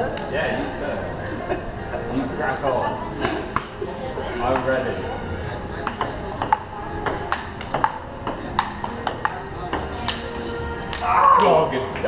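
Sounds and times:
table tennis ball clicking: 0:05.8 - 0:10.2.

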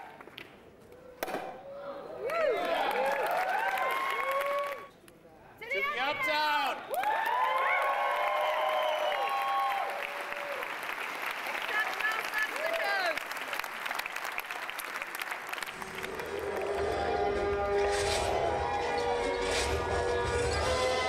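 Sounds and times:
cheering shouts: 0:02.2 - 0:04.9, 0:05.7 - 0:10.7
audience applauding: 0:02.3 - 0:04.9, 0:06.9 - 0:18.2.

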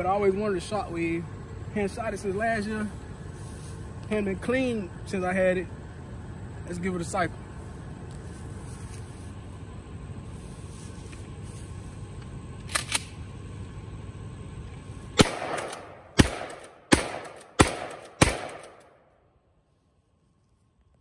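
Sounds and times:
quick clicks: 0:12.6 - 0:13.2
shotgun shots: 0:15.2 - 0:19.0.

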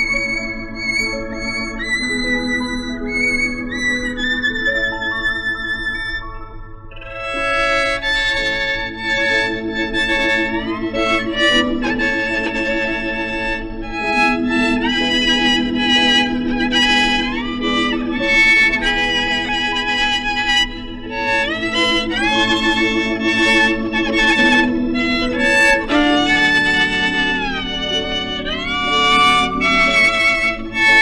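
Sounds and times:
bowed violin with sliding notes: 0:00.0 - 0:31.0
melody in long held notes: 0:00.0 - 0:31.0
sustained chords: 0:00.0 - 0:31.0.

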